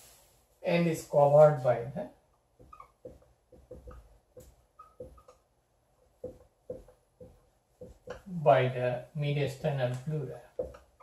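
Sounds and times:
marker squeaking on whiteboard: 2.5 - 8.3.

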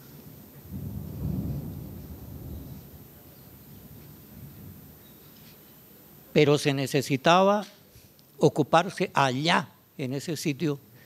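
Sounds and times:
low rumble: 0.6 - 5.4.

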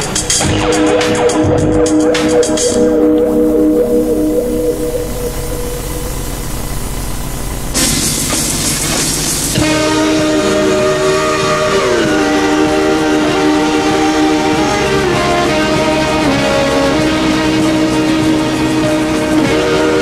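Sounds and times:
train rushing hiss: 2.2 - 20.0.

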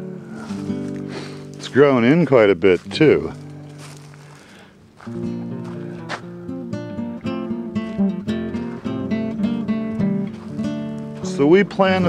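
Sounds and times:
acoustic guitar plucking: 0.0 - 12.0.

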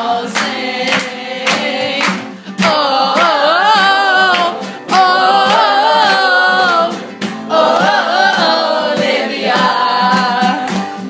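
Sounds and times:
group singing together: 0.0 - 11.0
hands clapping in rhythm: 0.0 - 11.0.

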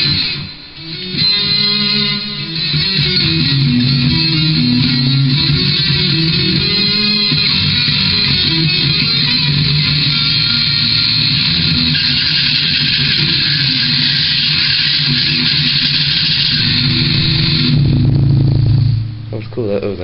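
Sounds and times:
distorted electric guitar: 0.0 - 20.0.

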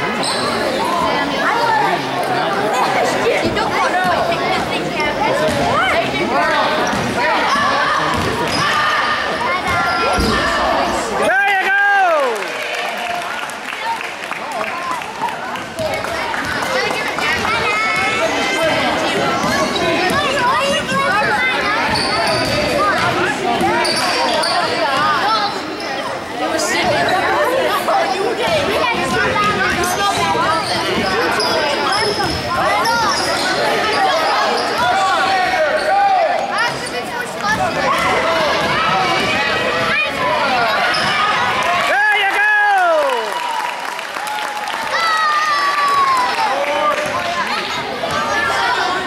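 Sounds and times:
chatter and shouts: 0.0 - 49.0.

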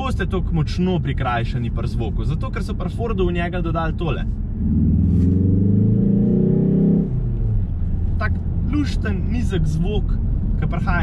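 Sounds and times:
car engine accelerating: 4.2 - 9.3.

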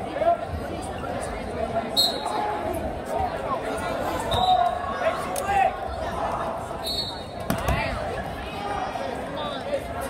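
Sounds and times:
spectators' voices in a hall: 0.0 - 10.0.

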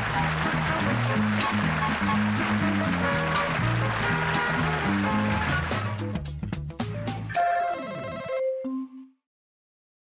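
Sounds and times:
closing theme music: 0.0 - 9.1.

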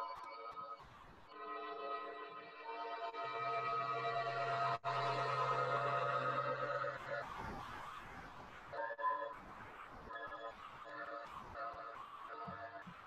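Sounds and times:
synthesizer droning chord: 1.4 - 7.2.

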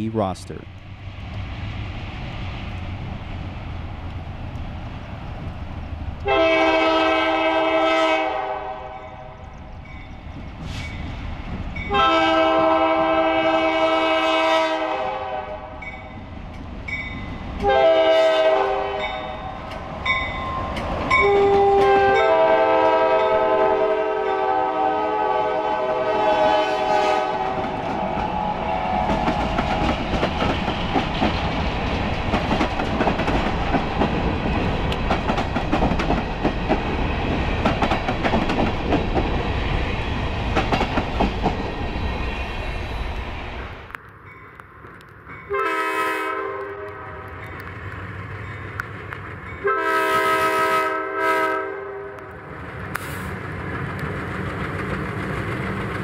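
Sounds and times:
locomotive engines passing: 0.0 - 7.2, 25.8 - 45.6, 52.3 - 56.0
locomotive air horn: 6.2 - 9.0, 11.9 - 15.8, 17.6 - 19.3, 21.2 - 27.6, 45.5 - 47.2, 49.6 - 52.2
train wheels clicking over rail joints: 27.5 - 41.9, 52.6 - 56.0.

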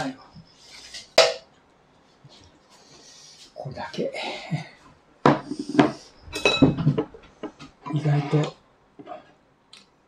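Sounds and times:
dishes clinking together: 6.4 - 7.1.

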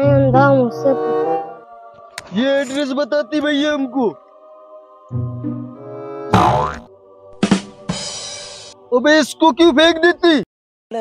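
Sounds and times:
background music: 0.0 - 10.4
cartoon boing: 6.3 - 6.9
drum hit: 7.4 - 8.7.

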